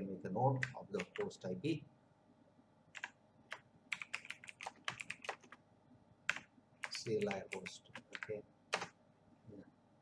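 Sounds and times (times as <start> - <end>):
typing on computer keyboard: 0.6 - 1.3, 3.0 - 5.6, 6.3 - 8.9.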